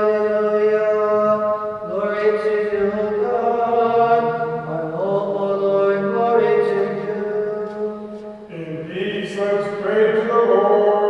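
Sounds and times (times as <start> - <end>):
man chanting in reverberant church: 0.0 - 11.0.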